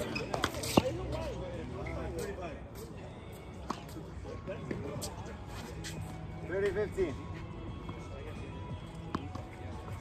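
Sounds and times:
tennis ball bouncing on hard court: 0:08.9 - 0:09.7
tennis ball struck by racket: 0:09.0 - 0:09.6.

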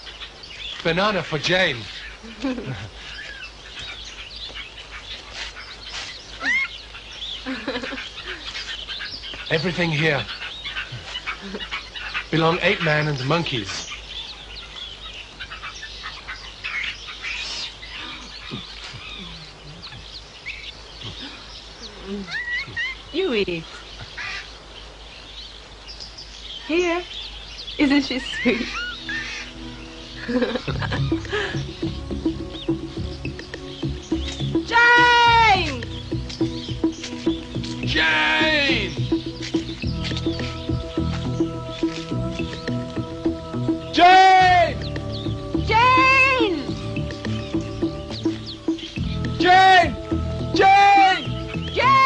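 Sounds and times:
faint high bird chirps: 0:01.7 - 0:49.9
film background music: 0:28.1 - 0:52.0
person shouting a name: 0:34.7 - 0:35.8, 0:37.9 - 0:38.9, 0:44.0 - 0:44.8, 0:45.7 - 0:46.7, 0:49.4 - 0:50.0, 0:50.6 - 0:51.2, 0:51.8 - 0:52.0.

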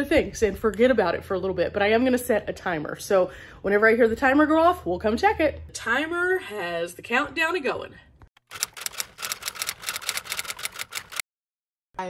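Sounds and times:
typewriter key clacks: 0:08.5 - 0:11.2.

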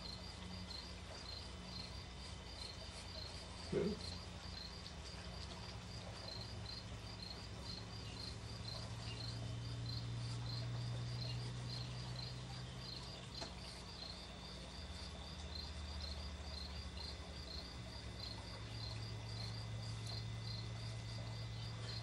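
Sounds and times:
cricket chirping: 0:00.0 - 0:22.0
steady low hum: 0:00.0 - 0:22.0.

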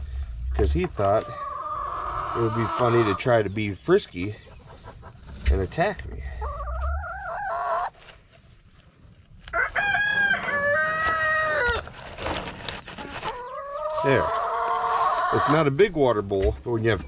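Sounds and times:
rooster crowing: 0:09.5 - 0:11.8.

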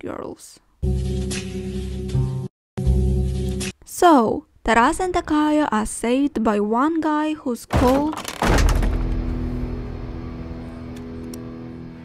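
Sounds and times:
loud impact: 0:07.7 - 0:10.6
low rumble: 0:08.5 - 0:11.3
low held drone chord: 0:09.3 - 0:12.0.

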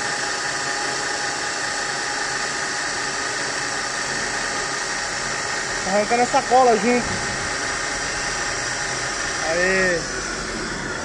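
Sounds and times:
metal lathe boring aluminium: 0:00.0 - 0:11.0.

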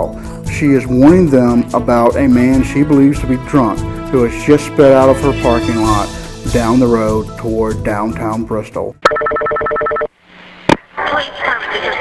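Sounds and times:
two-tone telephone ring: 0:09.1 - 0:10.1.

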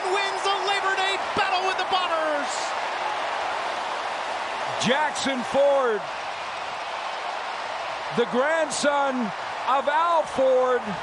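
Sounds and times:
large stadium crowd noise: 0:00.0 - 0:11.0.

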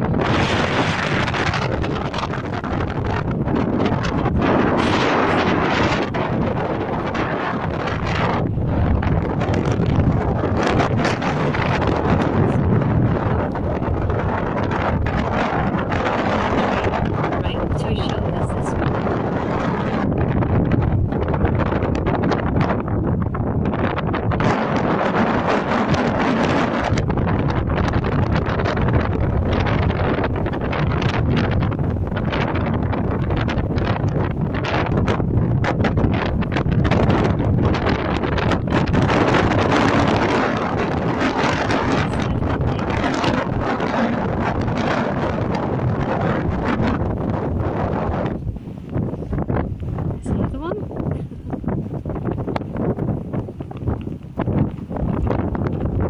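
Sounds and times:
gusty wind buffeting microphone: 0:00.0 - 0:56.0.

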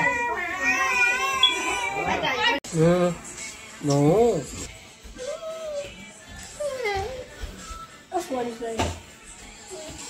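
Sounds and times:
baby crying: 0:00.0 - 0:02.6.

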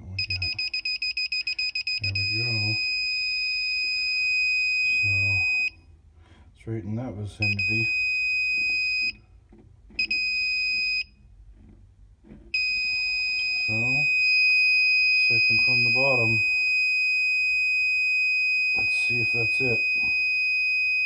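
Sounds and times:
high electronic tone: 0:12.6 - 0:17.7.

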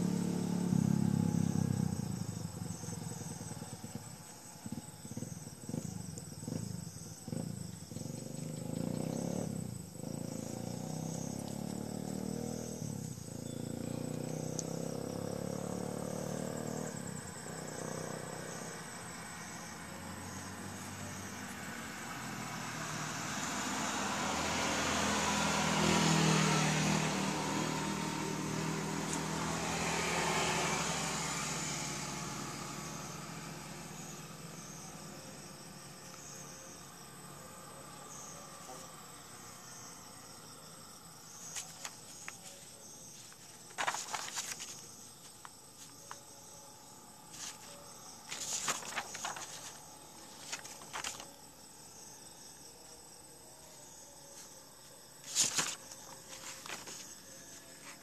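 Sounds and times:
motor vehicle passing: 0:00.0 - 0:45.2, 0:45.9 - 0:52.1
insects chirping: 0:00.0 - 0:58.0.

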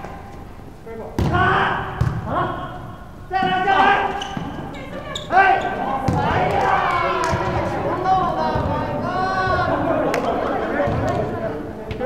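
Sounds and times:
players shouting: 0:01.2 - 0:11.7.

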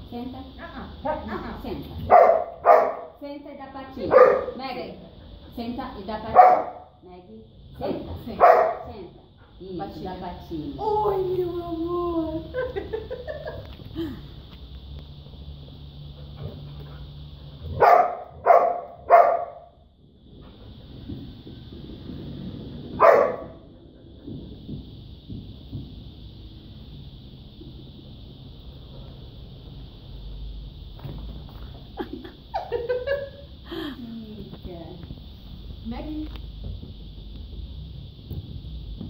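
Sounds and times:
small dog barking: 0:02.1 - 0:03.2, 0:04.0 - 0:04.6, 0:06.3 - 0:06.9, 0:08.4 - 0:08.9, 0:17.8 - 0:19.7, 0:23.0 - 0:23.6.

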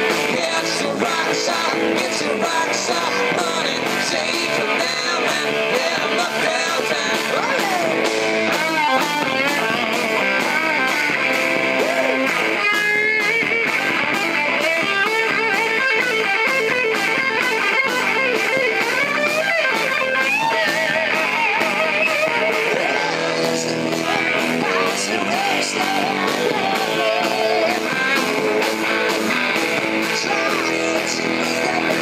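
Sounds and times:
electric guitar lead: 0:00.0 - 0:32.0
rock band playing: 0:00.0 - 0:32.0.

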